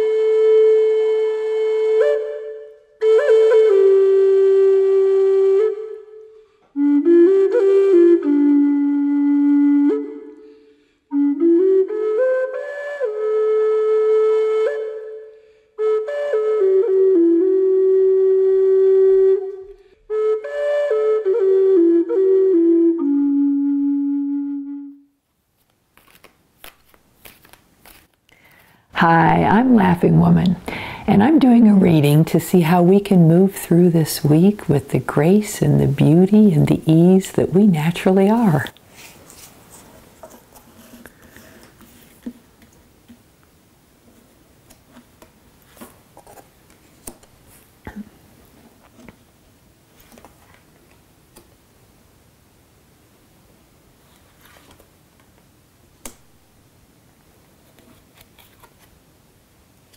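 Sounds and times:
flute long held note: 0.0s - 25.2s
cards shuffling: 25.6s - 28.8s, 57.7s - 58.9s.

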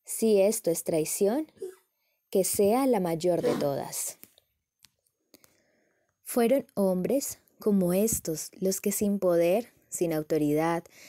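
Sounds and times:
woman reading aloud: 2.4s - 4.2s, 6.3s - 10.8s.

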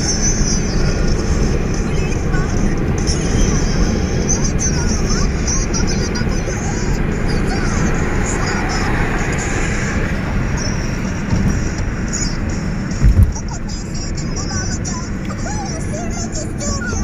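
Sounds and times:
car road and engine noise: 0.0s - 17.0s
short low thump: 13.0s - 13.4s.

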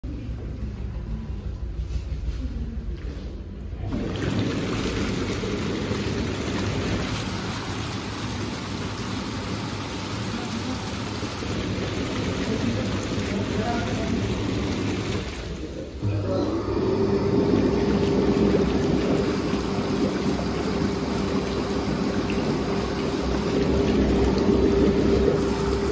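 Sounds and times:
low pump hum: 0.0s - 25.9s.

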